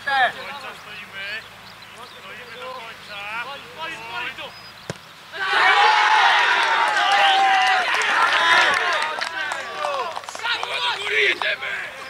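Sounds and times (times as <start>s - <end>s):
players shouting: 2.2s - 12.0s.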